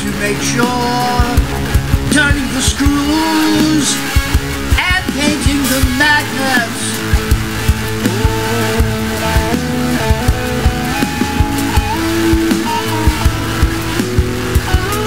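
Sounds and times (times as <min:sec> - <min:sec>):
bass guitar: 0:00.0 - 0:15.0
electric guitar with slides and bends: 0:00.0 - 0:15.0
steady drum beat: 0:00.0 - 0:15.0.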